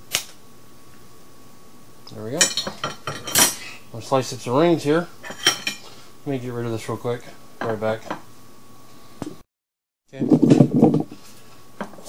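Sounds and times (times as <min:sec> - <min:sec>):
thin steady hum: 0:00.0 - 0:09.4.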